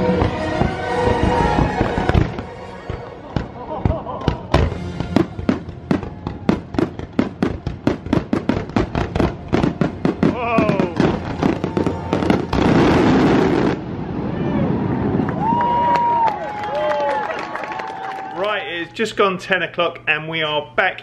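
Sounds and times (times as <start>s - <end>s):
music: 0.0s - 8.0s
fireworks bangs and pops: 0.0s - 13.8s.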